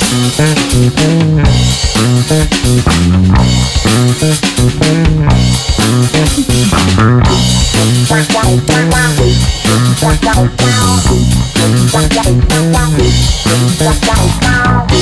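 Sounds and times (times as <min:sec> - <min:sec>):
bass guitar: 0:00.0 - 0:15.0
drum kit: 0:00.0 - 0:15.0
guitars: 0:00.0 - 0:15.0.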